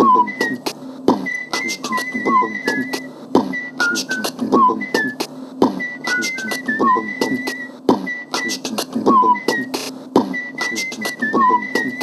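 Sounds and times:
beatboxed clicks and hits: 0.0 - 12.0
held whistle: 0.0 - 12.0
hummed vocal notes: 0.0 - 12.0.

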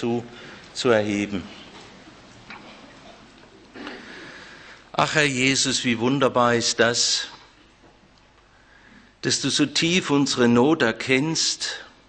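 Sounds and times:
rustling and shuffling: 0.2 - 4.3.

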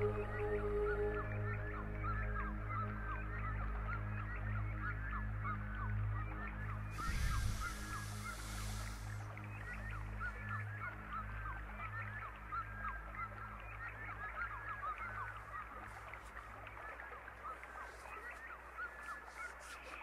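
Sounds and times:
burst of hiss: 7.0 - 9.2.

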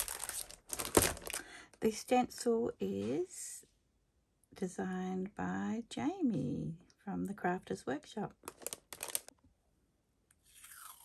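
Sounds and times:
plastic packaging crinkling: 0.0 - 1.5, 8.4 - 9.3.

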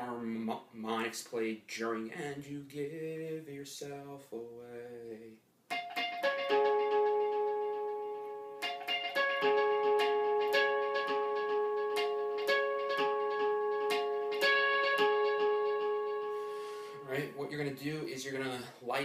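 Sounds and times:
electric guitar harmonics: 5.7 - 18.2.

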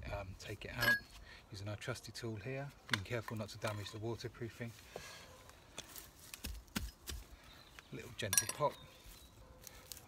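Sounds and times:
rustling plants: 2.6 - 10.0.

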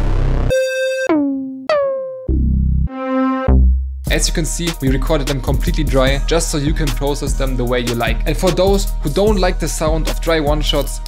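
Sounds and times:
analog synthesizer notes: 0.0 - 4.1.

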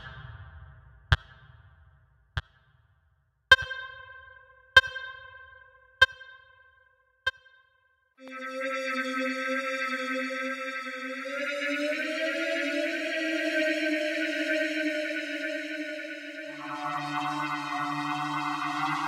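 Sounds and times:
sustained bright synth chord: 8.2 - 19.0.

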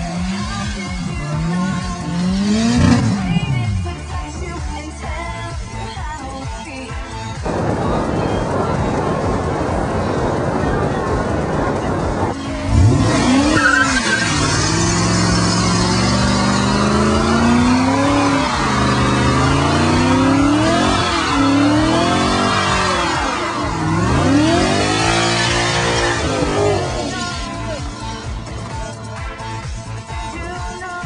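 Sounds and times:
car engine revving: 0.0 - 5.2, 7.4 - 29.0.

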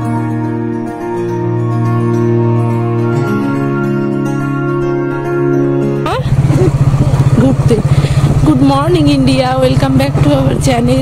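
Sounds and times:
motorcycle engine running: 6.0 - 11.0.

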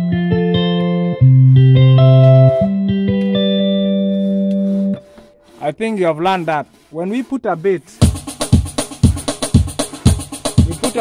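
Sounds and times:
keyboard drum beat: 7.9 - 11.0.

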